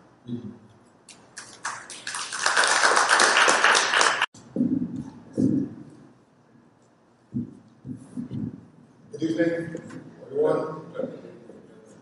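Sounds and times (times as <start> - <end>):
audience applauding: 1.4 - 4.3.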